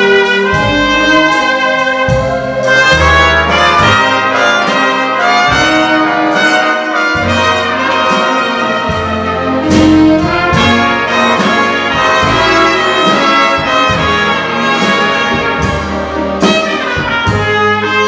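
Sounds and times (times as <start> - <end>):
big band instrumental: 0.0 - 18.0.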